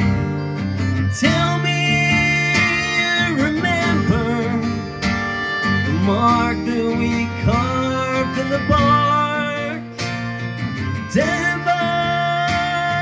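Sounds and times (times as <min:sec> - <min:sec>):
acoustic guitar strumming: 0:00.0 - 0:13.0
man singing: 0:01.0 - 0:10.0, 0:10.8 - 0:13.0.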